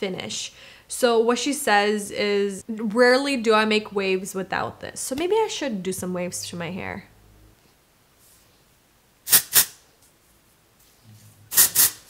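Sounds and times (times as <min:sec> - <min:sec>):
aerosol spray hissing: 0:09.3 - 0:09.8, 0:11.5 - 0:12.0.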